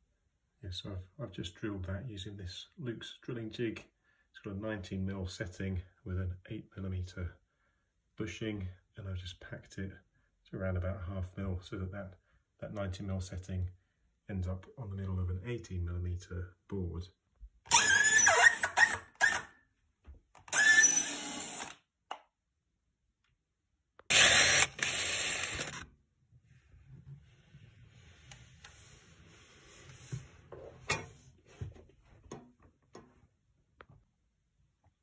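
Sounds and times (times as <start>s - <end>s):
power drill boring through wood: 17.7s - 19.4s, 20.5s - 21.8s, 24.1s - 25.8s.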